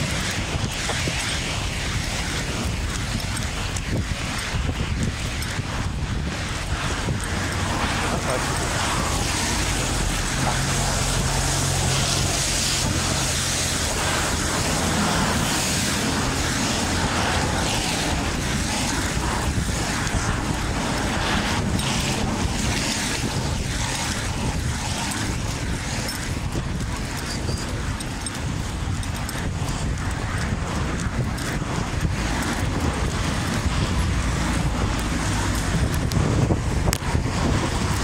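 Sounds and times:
road traffic noise: 0.0s - 38.0s
vehicle engine humming: 0.0s - 38.0s.

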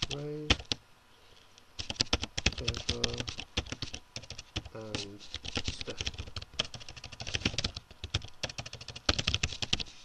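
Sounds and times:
typing on computer keyboard: 0.0s - 0.8s, 1.8s - 9.9s.

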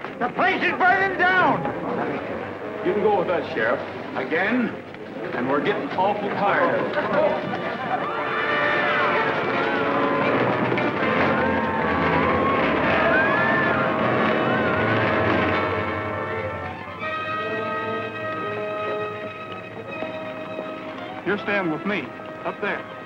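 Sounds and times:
dramatic orchestral music: 7.9s - 23.0s
voices shouting in alarm: 10.9s - 16.0s.

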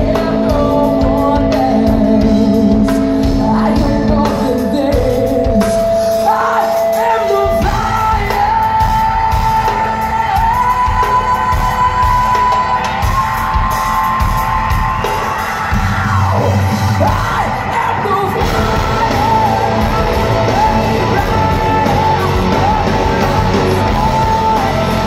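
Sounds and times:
woman singing long notes: 0.0s - 13.1s
live hard rock band: 0.0s - 25.0s.

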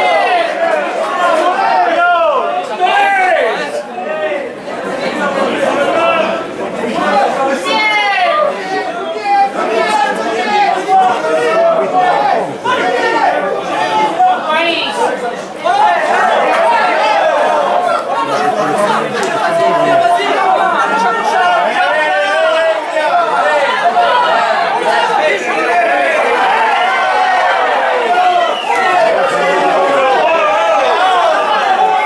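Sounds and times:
people talking at once: 0.0s - 32.0s.

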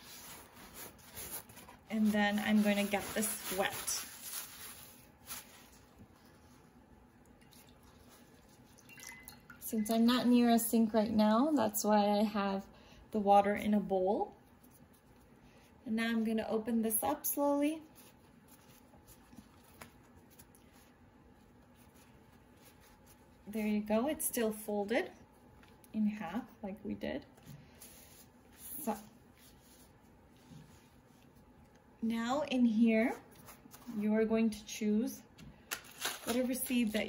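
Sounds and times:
paper rustle: 0.0s - 6.6s, 17.9s - 23.3s, 35.6s - 37.0s
water dripping and splashing: 7.2s - 9.9s.

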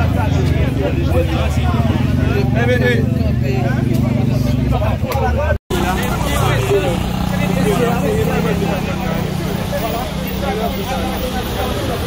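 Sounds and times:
people talking at once: 0.0s - 12.0s.

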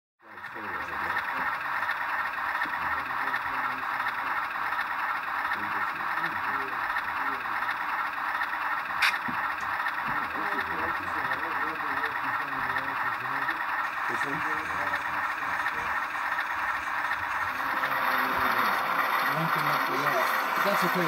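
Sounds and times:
people talking indistinctly: 0.3s - 21.0s
sharp click: 9.0s - 9.4s.

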